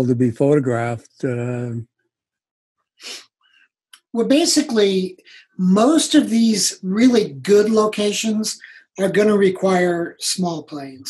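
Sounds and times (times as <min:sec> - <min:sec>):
man speaking: 0:00.0 - 0:01.8, 0:04.0 - 0:11.0.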